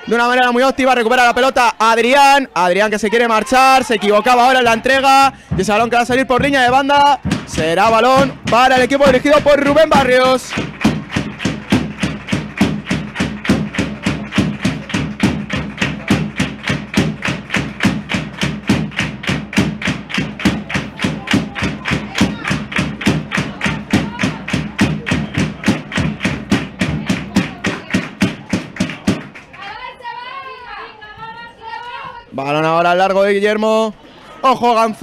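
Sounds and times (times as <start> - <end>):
rhythmic hand-clapping: 3.5 - 29.9.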